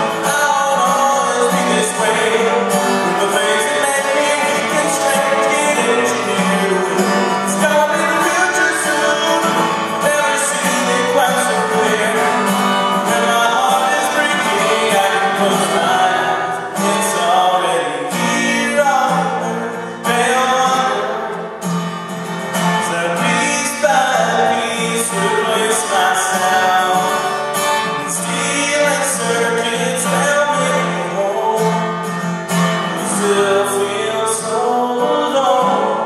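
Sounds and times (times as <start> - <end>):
acoustic guitar strumming: 0.0 - 36.0
man singing: 0.0 - 36.0.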